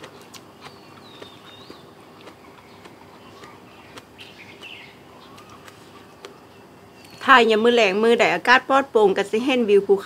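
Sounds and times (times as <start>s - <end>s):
faint bird chirps: 0.6s - 7.8s.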